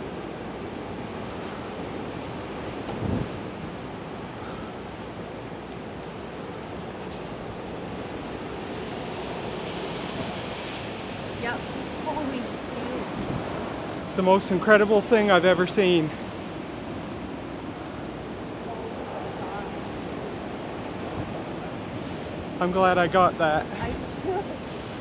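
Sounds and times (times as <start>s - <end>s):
rain: 0.0s - 25.0s
wind: 0.0s - 25.0s.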